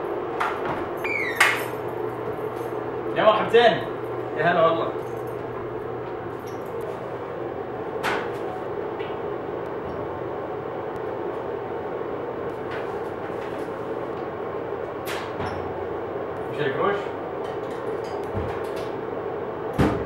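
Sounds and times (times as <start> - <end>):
laundry machines humming: 0.0 - 20.0.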